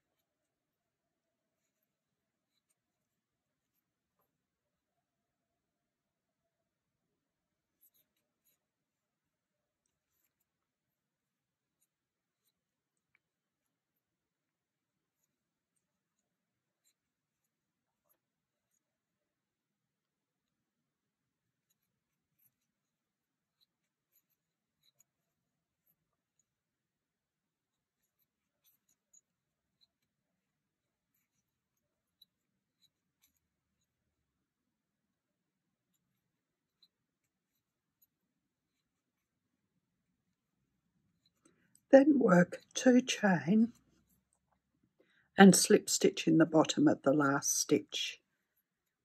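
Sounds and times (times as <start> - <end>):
crochet hook ticks and rustles: 0.0 - 49.0.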